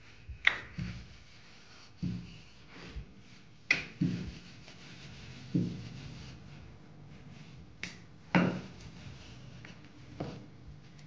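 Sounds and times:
rolling pin rolling over dough: 0.1s - 11.0s.

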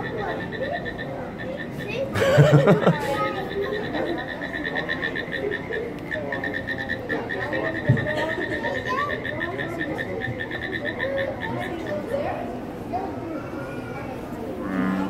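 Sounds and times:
frog calls: 0.0s - 12.4s.

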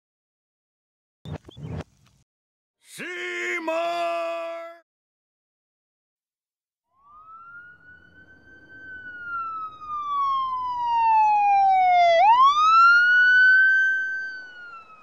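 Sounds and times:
siren wailing: 6.9s - 15.0s.

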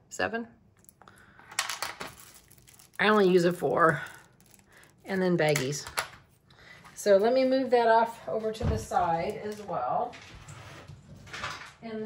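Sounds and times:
plastic bags crinkling: 0.8s - 6.4s.

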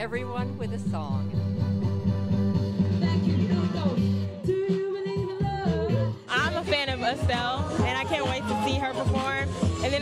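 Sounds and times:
backing track with bass line: 0.0s - 10.0s
woman singing: 2.9s - 10.0s.

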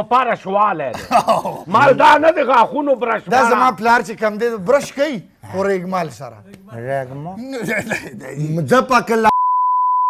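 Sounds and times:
man talking: 0.0s - 9.3s
censor bleep: 9.3s - 10.0s.

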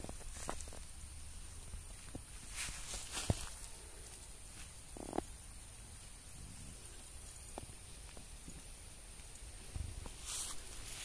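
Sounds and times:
footsteps through thick vegetation: 0.0s - 1.0s, 1.9s - 5.2s, 9.7s - 11.0s.

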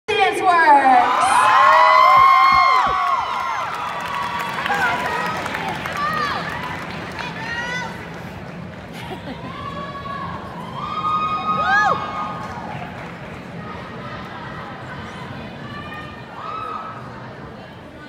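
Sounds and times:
crowd cheering and screaming: 0.8s - 8.0s, 9.0s - 12.9s.

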